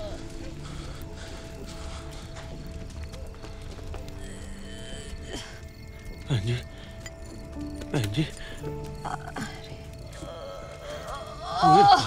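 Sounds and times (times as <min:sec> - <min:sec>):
sombre sustained music: 0:00.0 - 0:12.0.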